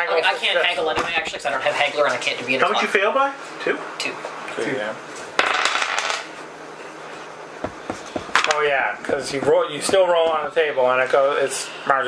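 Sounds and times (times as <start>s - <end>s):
dice clattering on table: 5.4s - 6.3s.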